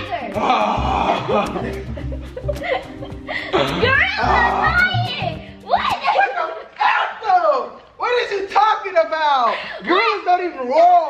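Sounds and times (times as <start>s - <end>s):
background music with bass beat: 0.0s - 5.9s
young people shrieking and laughing: 0.6s - 7.2s.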